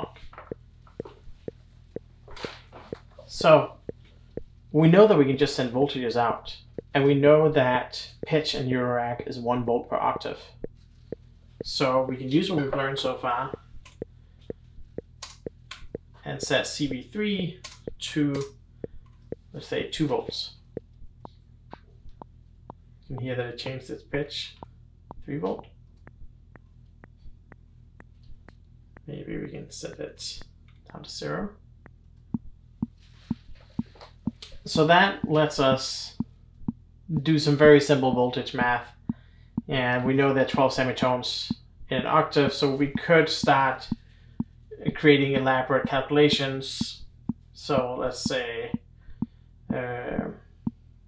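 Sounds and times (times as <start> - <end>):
low steady hum: 0.0 - 51.0.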